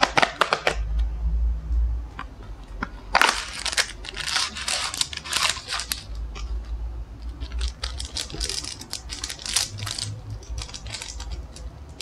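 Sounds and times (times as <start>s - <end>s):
dog crunching hard treat: 3.1s - 6.1s, 7.3s - 12.0s
foil packet crinkling: 3.1s - 6.2s, 7.3s - 12.0s.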